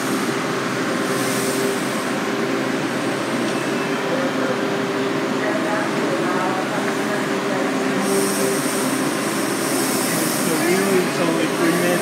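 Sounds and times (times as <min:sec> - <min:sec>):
high hiss from wheels and brakes: 0:00.0 - 0:03.4, 0:07.9 - 0:12.0
subway train braking to a stop: 0:00.0 - 0:12.0
voices of waiting passengers: 0:00.0 - 0:12.0.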